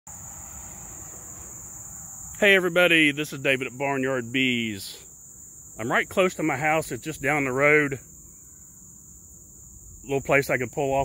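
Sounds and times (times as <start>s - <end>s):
crickets chirping: 0.1s - 11.0s.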